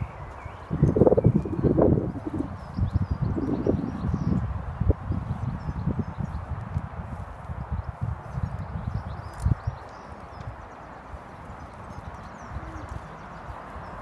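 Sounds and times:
horse hooves walking on grass: 0.0 - 14.0.

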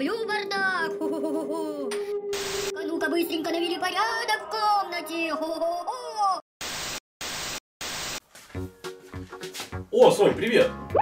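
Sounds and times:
background music: 0.0 - 5.9, 8.5 - 11.0
tv static hiss: 6.6 - 8.2.

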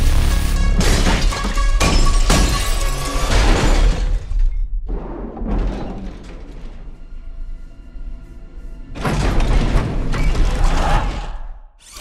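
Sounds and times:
dramatic music with deep bass: 0.0 - 4.5
glass shattering: 0.8 - 4.4.

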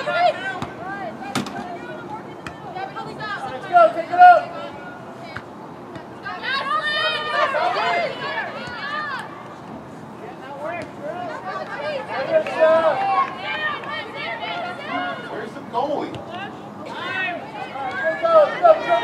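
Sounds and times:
players shouting: 0.0 - 9.6, 10.3 - 19.0.

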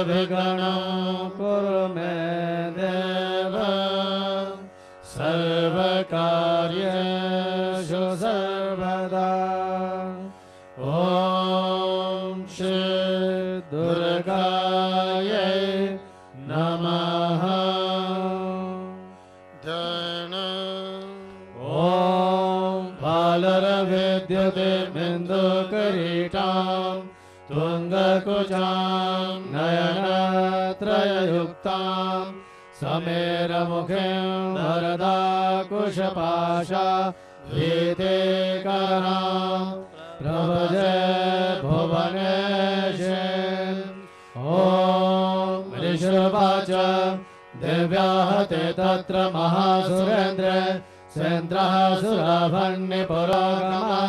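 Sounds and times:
mantra chanting: 0.0 - 54.0.

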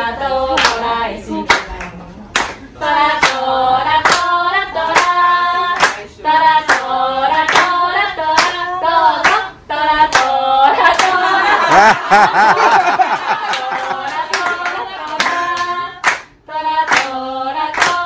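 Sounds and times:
people singing a game song: 0.0 - 1.8, 2.8 - 18.0
hand clapping: 1.5 - 3.4, 4.0 - 4.3, 4.9 - 5.2, 5.8 - 6.0, 6.7 - 7.8, 12.7 - 16.3, 16.9 - 18.0.

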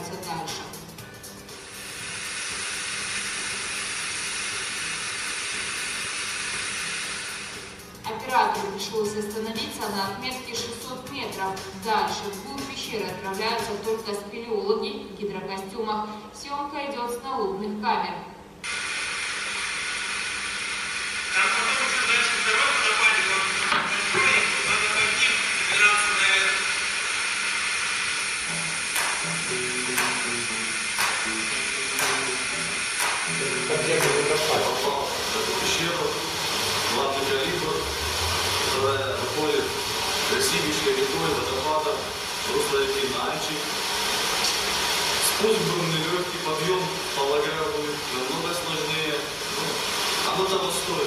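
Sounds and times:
background music with beat: 0.0 - 2.8, 6.5 - 14.2, 28.4 - 35.6
steady hiss: 0.8 - 10.7, 18.6 - 51.0.

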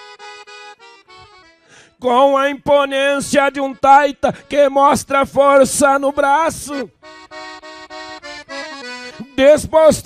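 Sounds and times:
accordion playing softly: 0.0 - 10.0.

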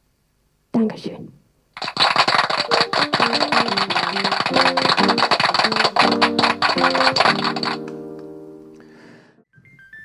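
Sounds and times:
recorded applause: 1.8 - 8.0.

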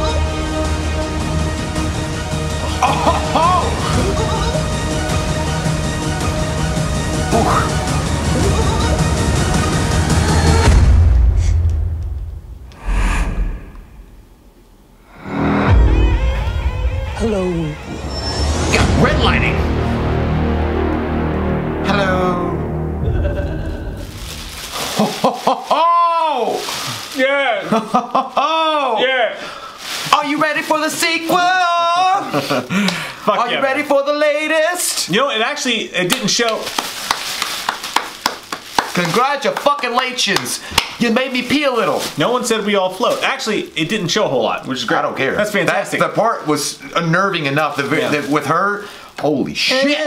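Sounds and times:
deep low rumble: 8.2 - 14.6
plastic poncho crinkling: 23.3 - 32.7, 36.1 - 50.0.

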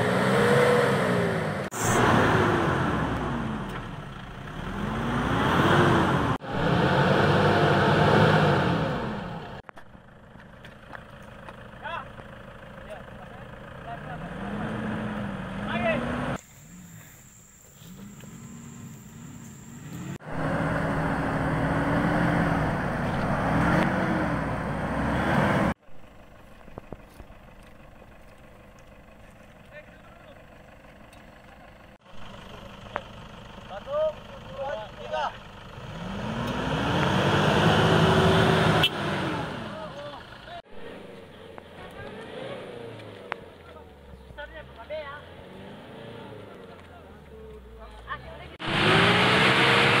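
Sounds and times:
vehicle engine revving hard: 0.0 - 3.7, 4.4 - 9.6, 14.0 - 16.4, 18.0 - 25.8, 35.7 - 40.0, 40.7 - 43.4, 44.6 - 46.9, 48.4 - 50.0.

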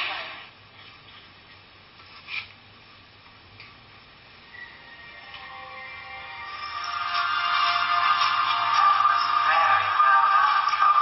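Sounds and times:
faint steady background noise: 0.0 - 11.0.

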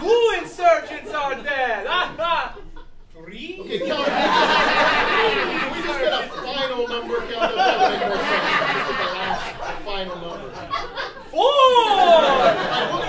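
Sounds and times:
audience laughing: 0.0 - 13.0.

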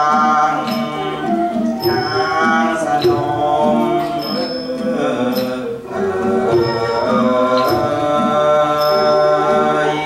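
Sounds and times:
drums: 0.0 - 10.0
flute: 0.0 - 10.0
small cymbals: 0.0 - 10.0
xylophones: 0.0 - 10.0
high metallic ringing: 0.7 - 10.0.

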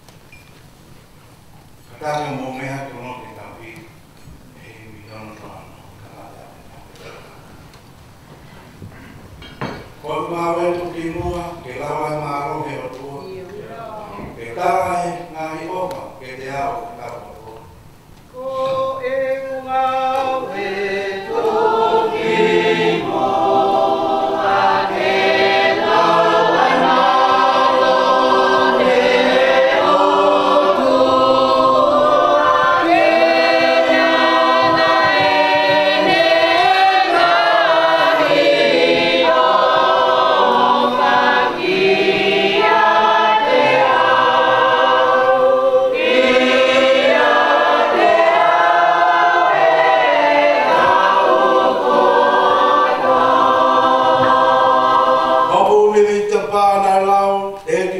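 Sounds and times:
people singing in chorus: 18.3 - 57.9.

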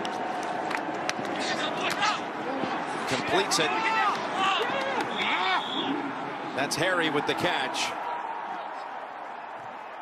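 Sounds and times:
broadcast background noise: 0.0 - 10.0.

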